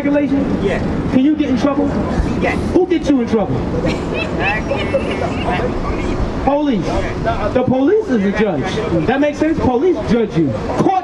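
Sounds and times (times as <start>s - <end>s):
passing vehicles: 0.0s - 11.0s
faint voices: 0.2s - 11.0s.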